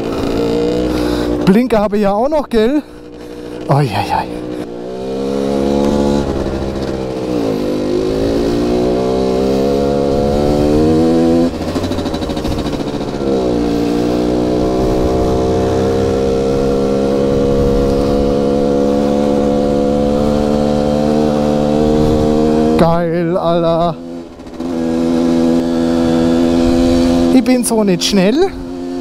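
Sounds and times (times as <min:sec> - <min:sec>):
moped two-stroke engine revving: 0:00.0 - 0:01.8, 0:02.8 - 0:29.0.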